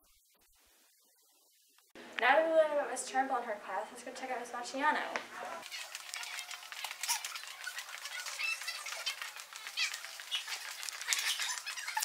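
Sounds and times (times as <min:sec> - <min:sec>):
shoe squeaks: 0:05.4 - 0:12.0.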